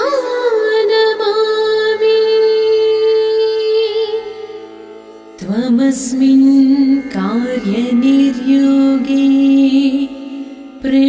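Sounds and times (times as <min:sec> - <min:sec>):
indian classical accompaniment: 0:00.0 - 0:11.0.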